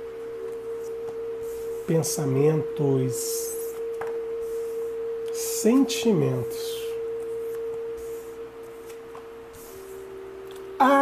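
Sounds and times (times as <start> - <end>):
sustained drone tone: 0.0 - 11.0.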